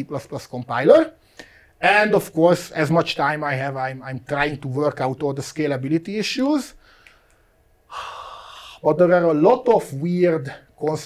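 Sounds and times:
man speaking: 0.0 - 1.2, 1.8 - 6.8, 8.5 - 11.0
man breathing in: 1.2 - 1.8, 6.8 - 8.8.

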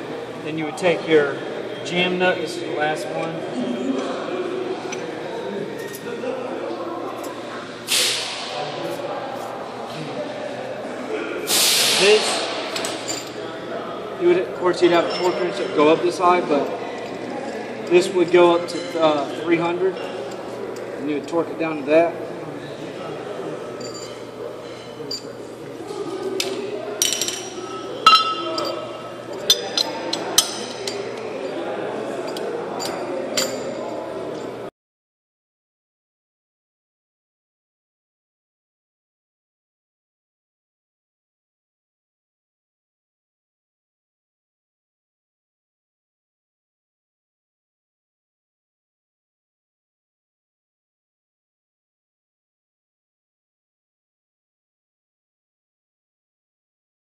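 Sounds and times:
shop background noise: 0.0 - 34.7
loud air hisses: 7.9 - 8.6, 11.5 - 12.7
metal nut clinking: 23.8 - 24.2, 27.0 - 31.6, 32.3 - 34.0.

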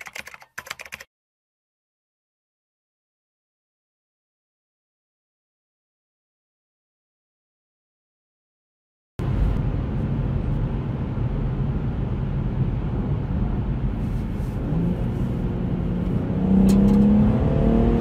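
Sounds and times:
car engine droning in cabin: 9.2 - 18.0
tyres cruising on road: 9.2 - 18.0.

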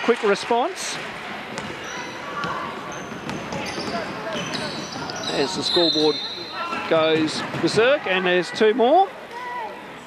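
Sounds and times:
sneaker squeaks: 1.5 - 7.8.

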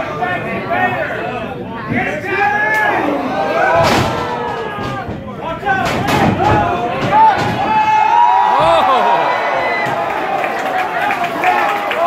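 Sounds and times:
crowd shouting and talking: 0.0 - 12.0.

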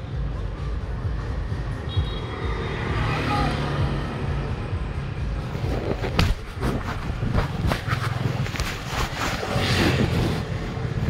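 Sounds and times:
street traffic rumble: 0.0 - 11.0
vehicle passing: 2.3 - 11.0.

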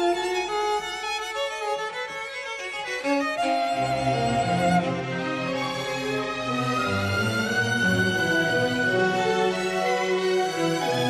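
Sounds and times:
solo violin melody: 0.0 - 11.0
orchestra playing: 3.0 - 11.0.

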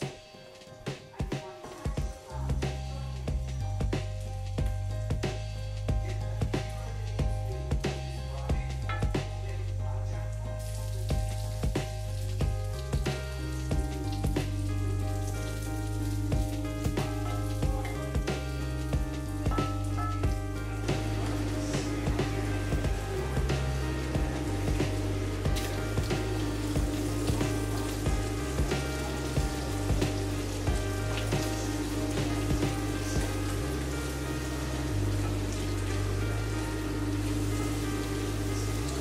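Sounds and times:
background music with beat: 0.0 - 39.0
sausage sizzling in a frying pan: 1.5 - 39.0.

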